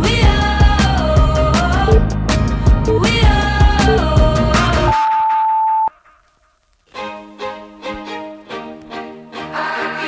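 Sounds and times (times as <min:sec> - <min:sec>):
music: 0:00.0 - 0:05.2, 0:05.9 - 0:10.0
electronic timer beep: 0:03.8 - 0:04.1, 0:04.9 - 0:05.9.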